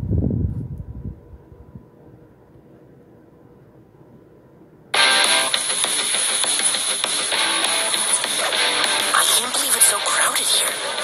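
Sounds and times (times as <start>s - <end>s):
microphone handling rumble: 0.0s - 1.9s
faint steady hum: 0.0s - 11.0s.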